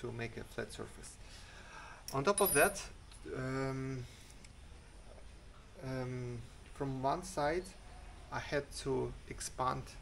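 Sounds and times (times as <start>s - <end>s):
faint low background noise: 0.0s - 10.0s.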